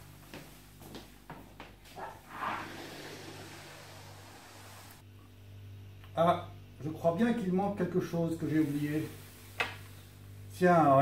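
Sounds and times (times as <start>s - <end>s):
light footsteps: 0.0s - 2.2s
low room hum: 0.0s - 11.0s.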